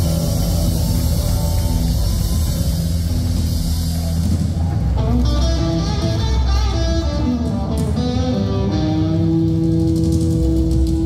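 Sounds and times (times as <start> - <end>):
picked electric guitar notes: 0.0 - 11.0.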